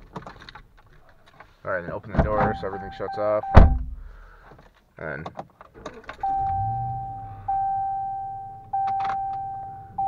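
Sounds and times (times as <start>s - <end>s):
car warning chime: 2.3s - 3.8s, 6.2s - 10.0s.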